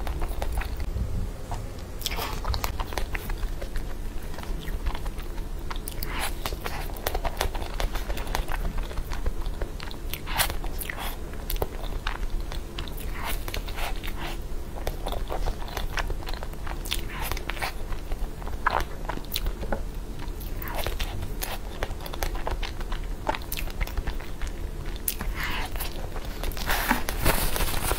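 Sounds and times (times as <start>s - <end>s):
close chewing and mouth sounds: 0.0s - 0.9s, 1.5s - 27.9s.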